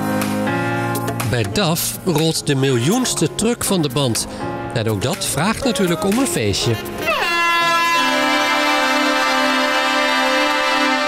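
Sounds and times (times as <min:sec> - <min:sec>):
background music: 0:00.0 - 0:11.0
truck air horn blast: 0:06.8 - 0:11.0.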